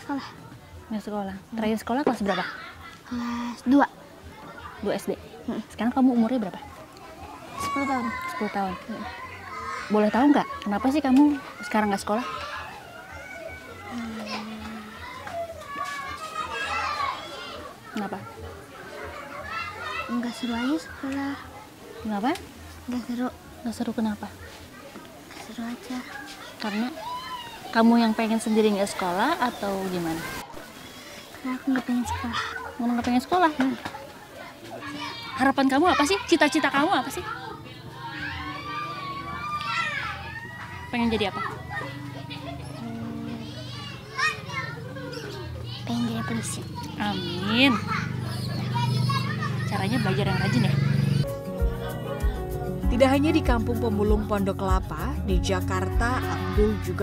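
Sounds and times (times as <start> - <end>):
high-pitched children's voices: 0.0 - 53.6, 54.9 - 57.0.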